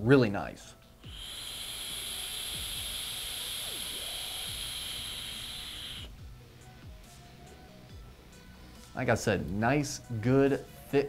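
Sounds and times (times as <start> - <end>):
vape airy hiss: 0.7 - 7.8.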